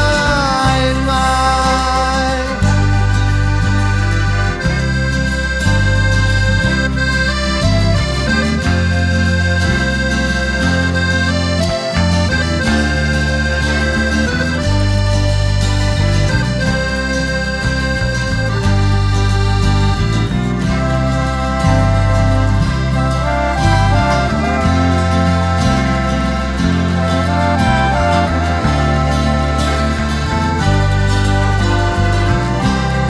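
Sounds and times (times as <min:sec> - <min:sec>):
accordion melody: 0:00.0 - 0:33.0
bass: 0:00.0 - 0:33.0
guitars: 0:00.0 - 0:33.0.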